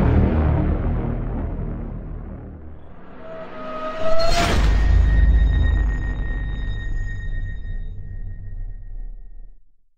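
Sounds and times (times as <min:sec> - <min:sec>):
deep electronic boom rumble: 0:00.0 - 0:09.4.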